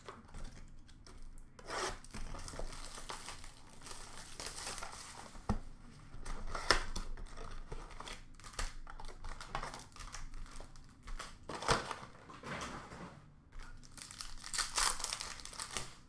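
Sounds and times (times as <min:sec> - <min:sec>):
shrink-wrap tearing and crinkling: 0:01.6 - 0:05.4, 0:06.4 - 0:12.1, 0:13.7 - 0:16.0.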